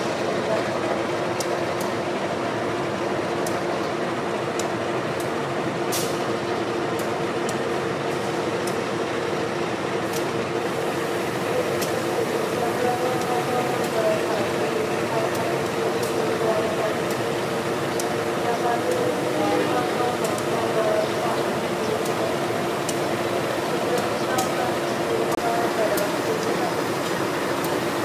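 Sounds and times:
locomotive engine hum: 0.0s - 28.0s.

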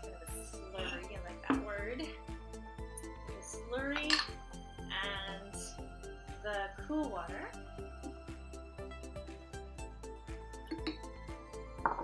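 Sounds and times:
light background music: 0.0s - 12.0s
glass jars clinking: 3.9s - 4.4s, 10.6s - 12.0s.

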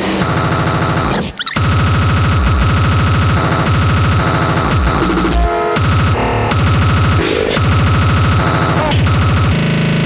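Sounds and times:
breakcore music: 0.0s - 10.0s.

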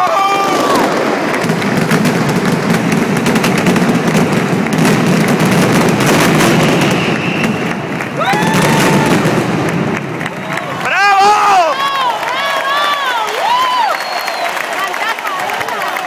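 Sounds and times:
person cheering: 0.0s - 1.0s, 8.2s - 9.3s, 10.4s - 16.0s
firecracker barrage: 0.0s - 16.0s.

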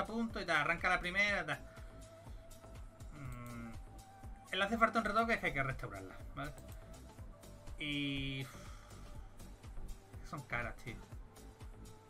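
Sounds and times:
quiet music with low beat: 0.0s - 12.0s.

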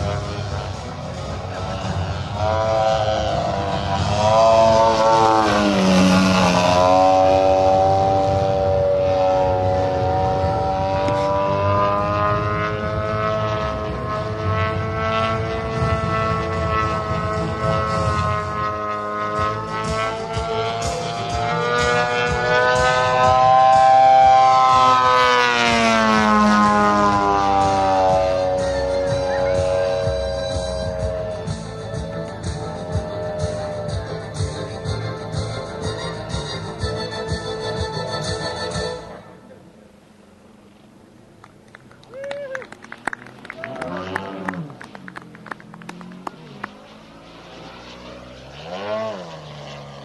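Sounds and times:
model airplane engine: 0.0s - 50.0s.

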